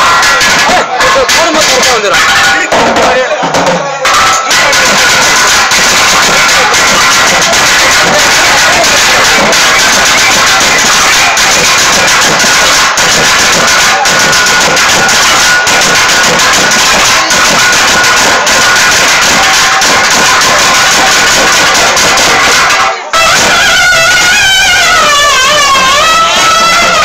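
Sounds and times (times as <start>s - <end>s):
dense drumming: 0.0s - 27.0s
distorted loud folk music: 0.0s - 27.0s
held high tones: 0.0s - 27.0s.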